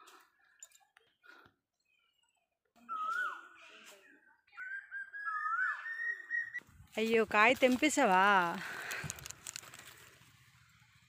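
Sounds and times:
high whistled tone: 2.8s - 3.6s, 4.6s - 6.6s.

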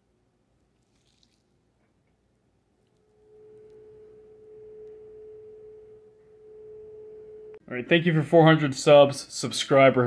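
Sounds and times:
steady tone: 2.9s - 7.9s.

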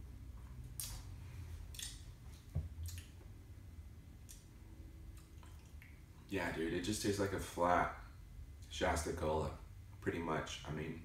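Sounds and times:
wet mouth smacks: 0.8s - 1.0s, 1.7s - 2.0s, 2.8s - 3.2s.

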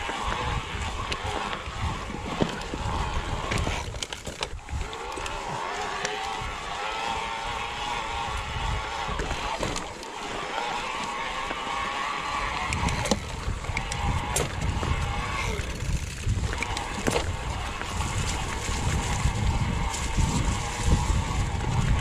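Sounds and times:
wind rumble on microphone: 0.0s - 10.0s, 10.8s - 22.0s
electric bike motor whining: 0.0s - 22.0s
tyres crunching over gravel: 0.0s - 22.0s.

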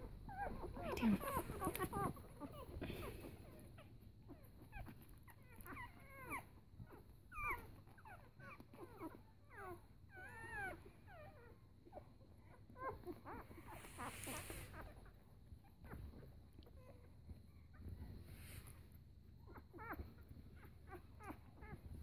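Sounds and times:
puppies whimpering and squeaking: 0.0s - 22.0s.

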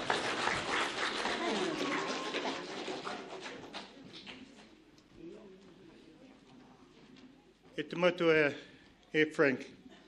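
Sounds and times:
audience applause: 0.0s - 4.0s.

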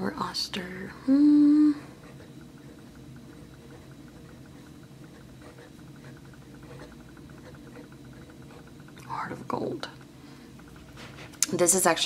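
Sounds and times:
low hum: 0.0s - 12.0s
pen nib scratching paper: 1.9s - 8.8s.

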